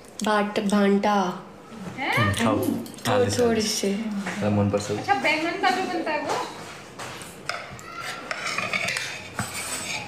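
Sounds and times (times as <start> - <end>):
cutlery clinking on a plate: 6.3 - 10.0.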